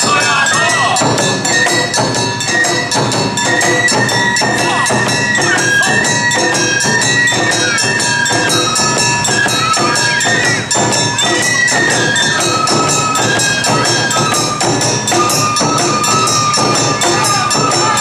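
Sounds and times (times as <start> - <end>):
barrel drums beating: 0.0 - 18.0
high flute-like melody: 0.0 - 18.0.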